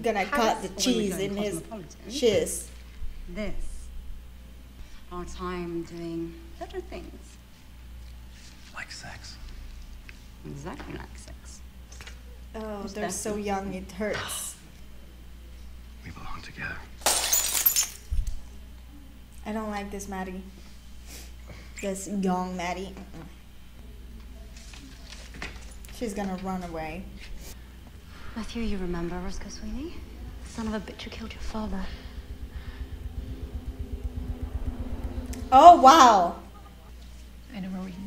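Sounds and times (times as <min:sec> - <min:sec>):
faint sustained hum: 0:00.0 - 0:38.0
drinking glass shattering: 0:17.0 - 0:18.0
low rumbling drone: 0:27.6 - 0:37.0
dull low thump: 0:30.0 - 0:36.2.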